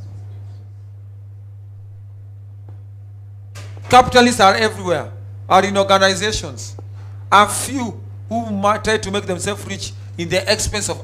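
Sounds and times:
low electrical hum: 0.0s - 11.0s
man speaking: 3.8s - 11.0s.

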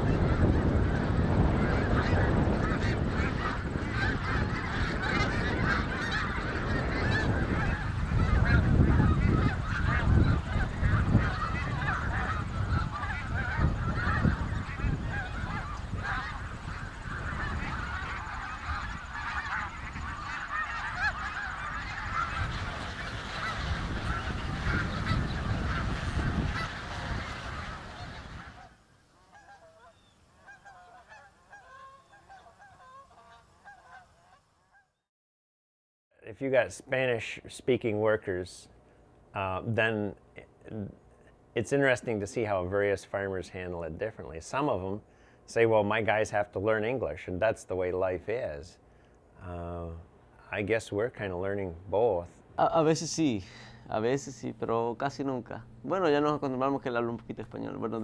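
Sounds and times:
geese honking in flight: 0.0s - 34.9s, 50.4s - 58.0s.

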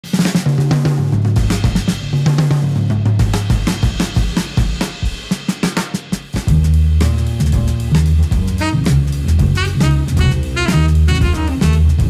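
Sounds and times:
drum kit playing busily: 0.0s - 12.0s
bass line of low notes: 6.5s - 12.0s.

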